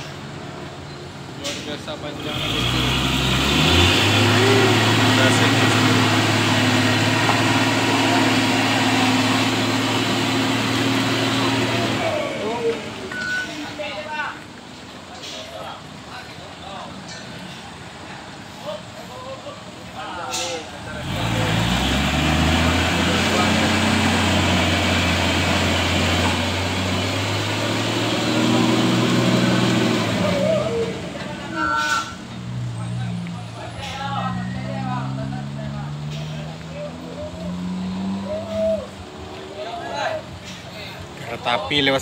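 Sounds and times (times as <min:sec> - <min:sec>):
truck diesel engine labouring: 0:00.0 - 0:42.0.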